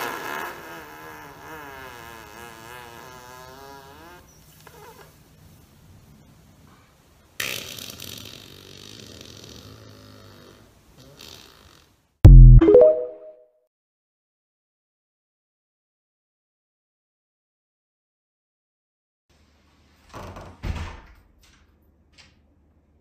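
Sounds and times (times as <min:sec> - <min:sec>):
person farting: 0:00.0 - 0:04.2, 0:07.4 - 0:11.6.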